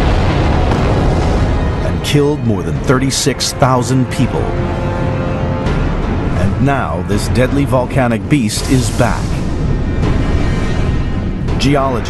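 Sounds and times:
volcanic eruption rumble: 0:00.0 - 0:03.0
music: 0:00.0 - 0:12.0.

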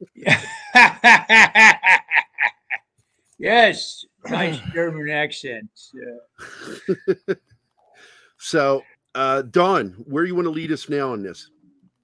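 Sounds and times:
man laughing: 0:00.1 - 0:02.8, 0:06.4 - 0:07.4.

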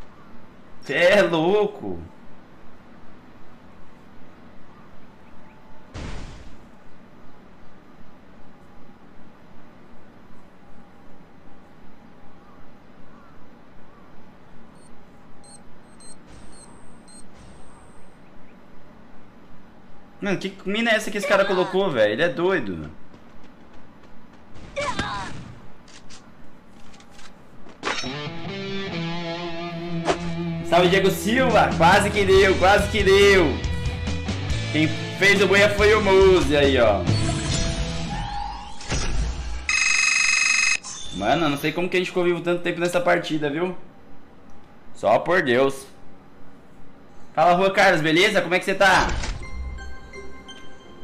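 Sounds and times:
game noise: 0:14.4 - 0:18.6, 0:38.5 - 0:41.8
buzzing electronic alarm tone: 0:14.8 - 0:18.2, 0:39.6 - 0:40.8
short high-pitched beeps: 0:14.8 - 0:18.2, 0:39.7 - 0:40.8.

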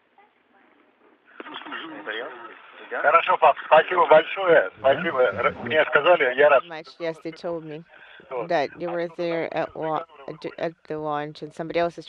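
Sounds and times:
speech over radio: 0:01.4 - 0:12.0
person laughing: 0:04.8 - 0:05.8.

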